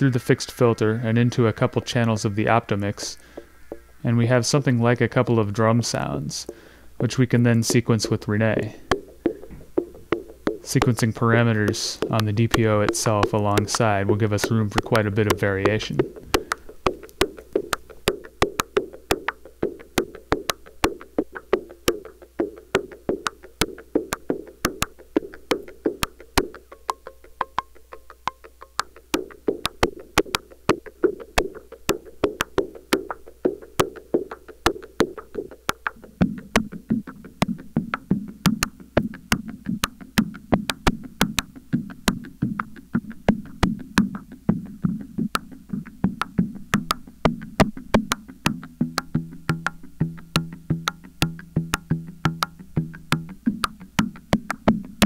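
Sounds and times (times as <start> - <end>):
synthesizer percussion hits: 0.0 - 6.6, 7.4 - 55.0.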